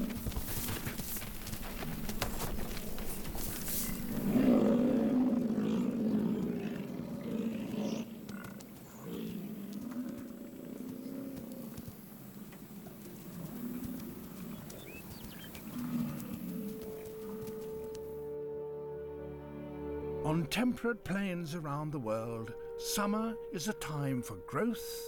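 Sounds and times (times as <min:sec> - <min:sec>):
bison bellowing: 0:01.7 - 0:11.7, 0:12.6 - 0:17.9.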